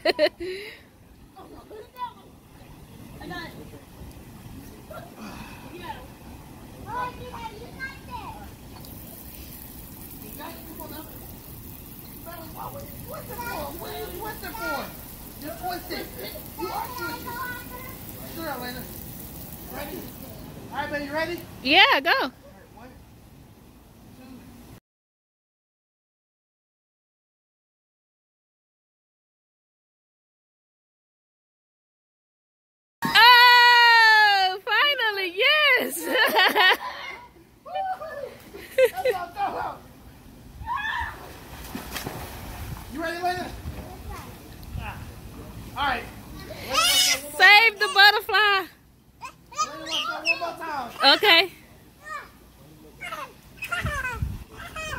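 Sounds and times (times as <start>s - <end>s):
voices talking and calling: 0.0s - 23.3s, 42.9s - 54.9s
pool water splashing: 0.0s - 24.8s, 33.0s - 54.9s
body splashing into pool: 41.0s - 42.9s.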